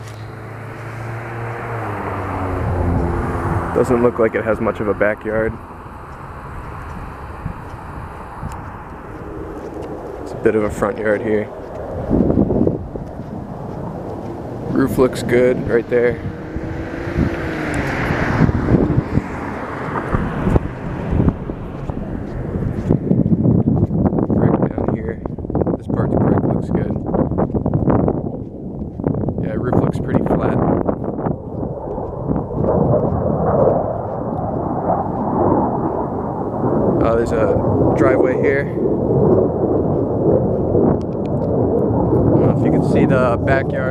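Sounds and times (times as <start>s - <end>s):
low uneven rumble: 0.0s - 43.9s
wind buffeting microphone: 0.0s - 43.9s.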